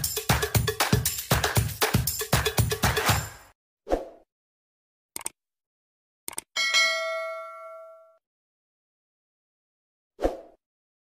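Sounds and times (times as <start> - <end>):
bell ding chime: 6.6 - 8.2.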